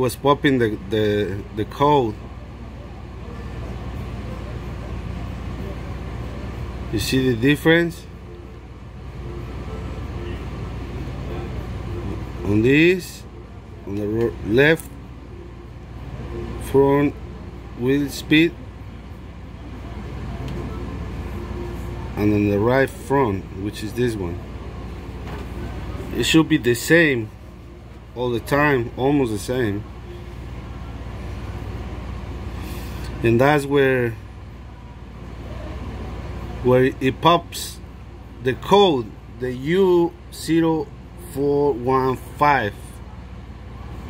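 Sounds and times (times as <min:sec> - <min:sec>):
pulsing mechanical hum: 0:00.0 - 0:44.0.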